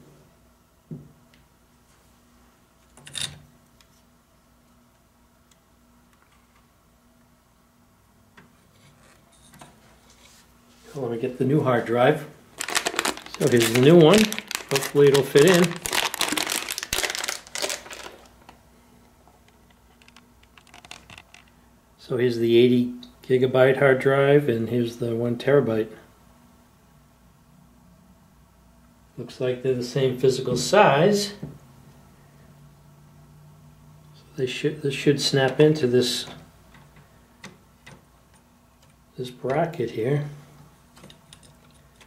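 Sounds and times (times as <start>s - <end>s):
faint steady hum: 0.0s - 42.0s
plastic bag crinkling: 12.5s - 18.6s, 20.0s - 21.5s.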